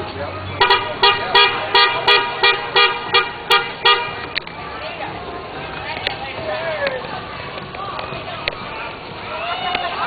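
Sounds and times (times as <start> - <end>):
horn tooting short blasts: 0.6 - 4.2.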